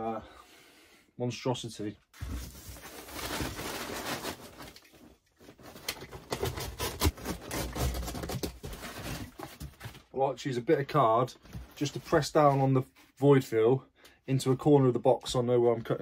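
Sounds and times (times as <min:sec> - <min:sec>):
packing fill rustling and crinkling: 0:02.2 - 0:10.1.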